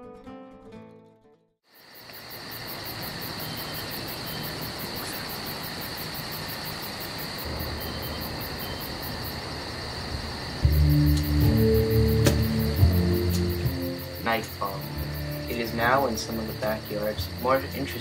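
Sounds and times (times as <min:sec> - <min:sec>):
crickets trilling: 0:01.7 - 0:18.0
music with deep bass: 0:10.6 - 0:18.0.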